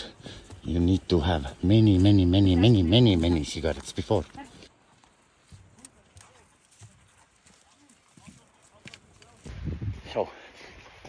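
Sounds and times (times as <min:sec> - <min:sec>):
faint voices: 0:01.5 - 0:11.0.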